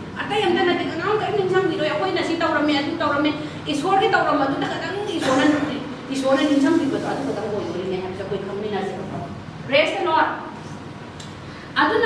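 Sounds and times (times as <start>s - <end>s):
woman preaching: 0.0s - 10.6s, 11.8s - 12.0s.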